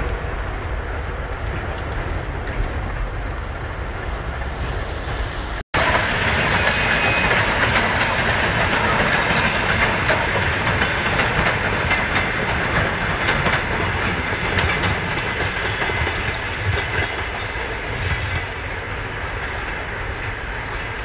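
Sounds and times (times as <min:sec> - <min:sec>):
train rumbling past: 0:00.0 - 0:21.0
wheels clattering over rail joints: 0:05.8 - 0:21.0.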